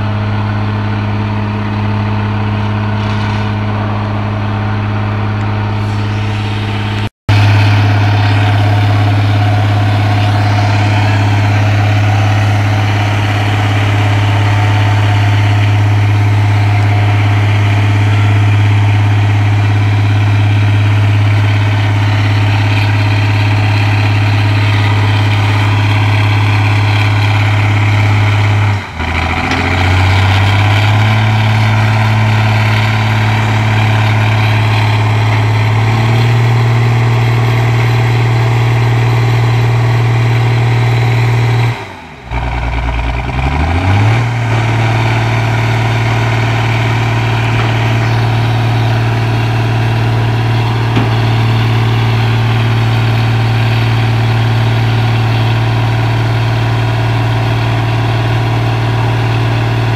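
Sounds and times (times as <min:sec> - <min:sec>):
excavator diesel engine running: 0:00.0 - 0:59.9.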